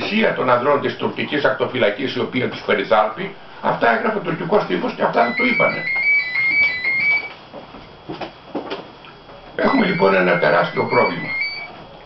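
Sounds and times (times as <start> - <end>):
man's voice: 9.6 - 11.3.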